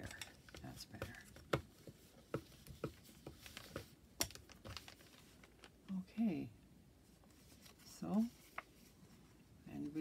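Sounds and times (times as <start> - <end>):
paper being folded and pressed: 0.0 - 5.7.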